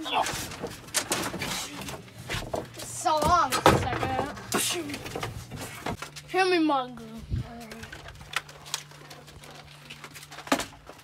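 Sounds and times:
knocks and scuffs in wooden shed: 0:00.0 - 0:06.4.

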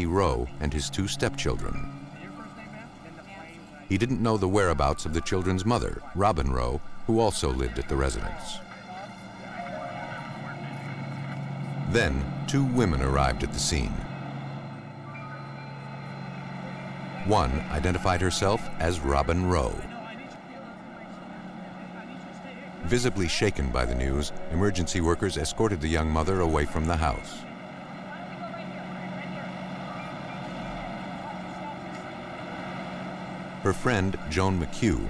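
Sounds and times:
faint voices: 0:00.0 - 0:35.0
vehicle engine idling: 0:00.0 - 0:35.0.

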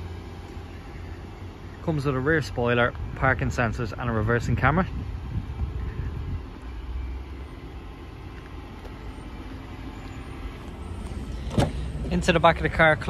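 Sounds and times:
low vehicle rumble: 0:00.0 - 0:13.0.

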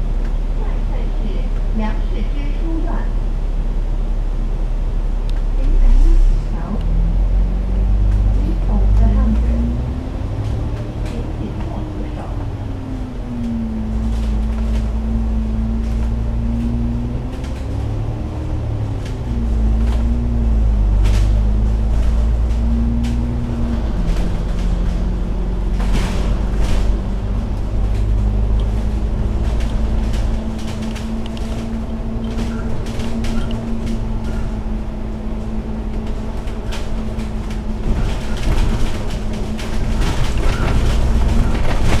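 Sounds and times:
bus engine droning: 0:00.0 - 0:42.0
sharp clicks and rattles: 0:21.0 - 0:34.7, 0:35.4 - 0:42.0.

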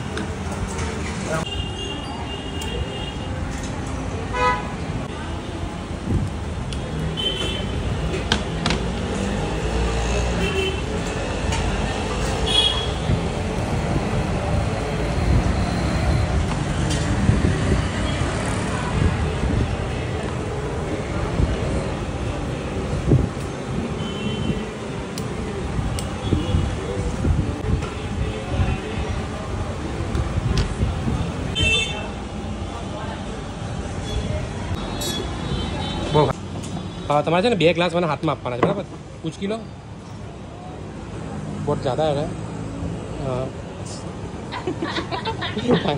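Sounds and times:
road traffic rumble: 0:00.0 - 0:45.9
high-pitched vehicle horn toot: 0:34.0 - 0:36.2.

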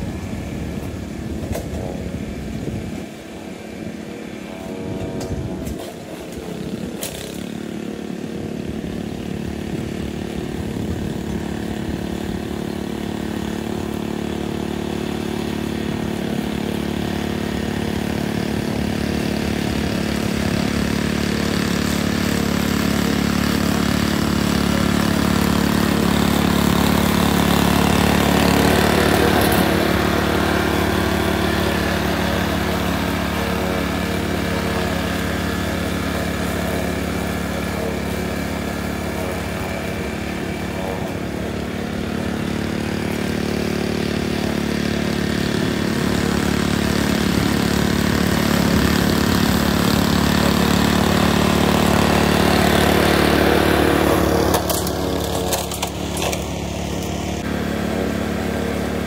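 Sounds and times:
lawn mower cutting grass: 0:00.0 - 0:59.0.

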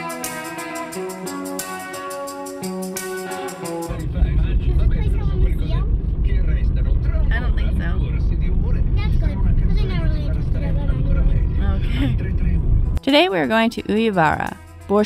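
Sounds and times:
quiet conversation: 0:03.9 - 0:12.6
car interior rumble: 0:03.9 - 0:13.0.

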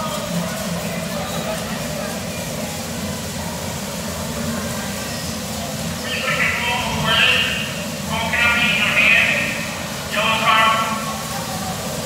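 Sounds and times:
bumper cars rumbling and humming: 0:00.0 - 0:12.0.

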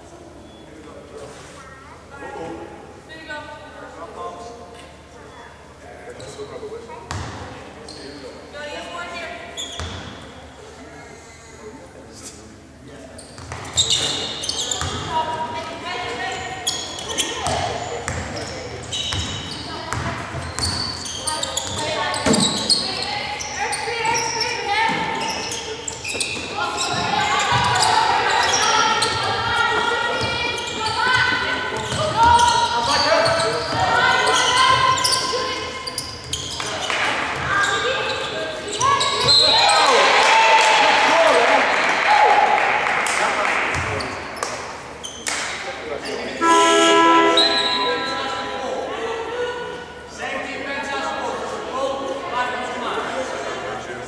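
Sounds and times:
basketball bouncing on wooden court: 0:07.1 - 0:07.4, 0:14.7 - 0:15.1, 0:17.4 - 0:22.8, 0:26.1 - 0:27.9
shoe squeaks: 0:07.8 - 0:08.3, 0:09.5 - 0:10.5, 0:13.1 - 0:15.4, 0:16.2 - 0:39.9, 0:44.0 - 0:45.4, 0:46.4 - 0:48.5
players shouting: 0:21.1 - 0:43.0.

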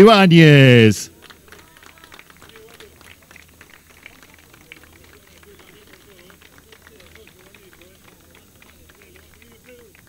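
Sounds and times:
scattered hand-clapping: 0:00.0 - 0:10.0.

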